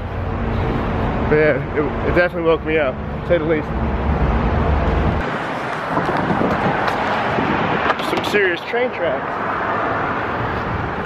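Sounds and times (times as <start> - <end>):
road traffic passing: 0.0 - 11.0
wind rumble on microphone: 4.2 - 8.4.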